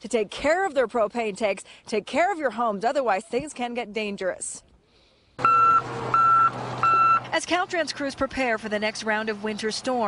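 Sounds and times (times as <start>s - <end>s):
engine hum: 5.2s - 10.0s
reversing alarm beeping: 5.4s - 7.3s.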